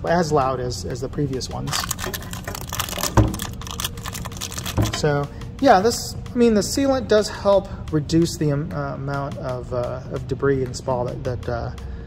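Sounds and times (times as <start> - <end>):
plastic packets crinkling: 1.6 - 5.1.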